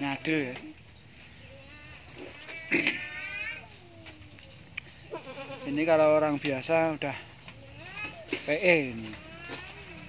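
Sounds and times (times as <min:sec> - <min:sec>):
goat bleating: 0:01.4 - 0:06.2, 0:07.6 - 0:10.0.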